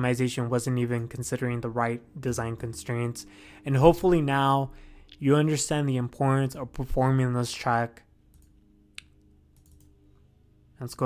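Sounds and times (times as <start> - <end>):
computer mouse click: 8.3 - 9.9.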